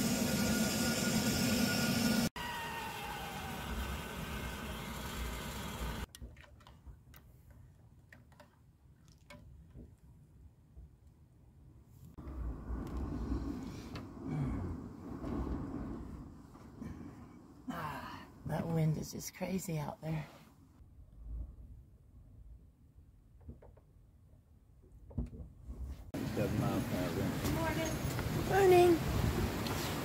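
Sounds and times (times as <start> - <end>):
camp stove burner hissing: 0.0 - 6.1
low rumbling: 12.2 - 18.5.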